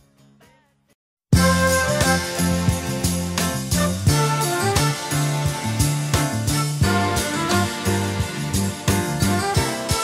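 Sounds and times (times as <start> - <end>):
instrumental pop music: 0.0 - 10.0.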